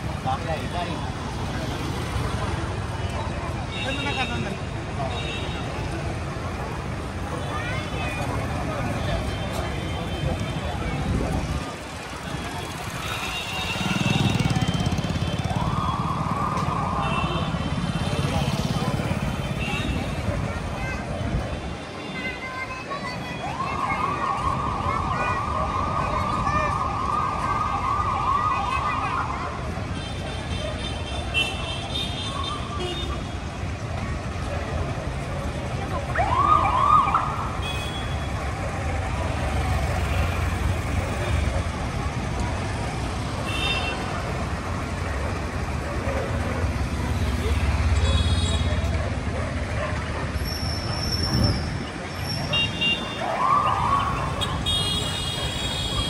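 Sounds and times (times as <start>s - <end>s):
motorbikes and scooters rumbling: 0.0s - 56.0s
siren wailing and whooping: 14.6s - 17.1s, 36.0s - 37.6s, 53.2s - 54.4s.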